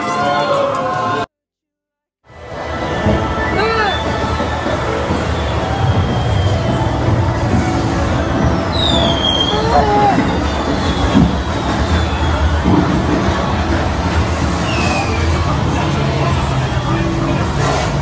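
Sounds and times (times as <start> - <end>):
rail vehicle rumble: 2.3 - 18.0
high squeal: 2.8 - 13.4, 14.5 - 18.0.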